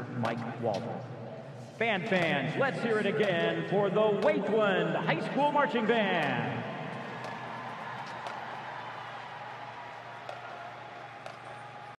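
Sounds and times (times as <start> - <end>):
stadium crowd applauding and cheering: 5.9 - 12.0.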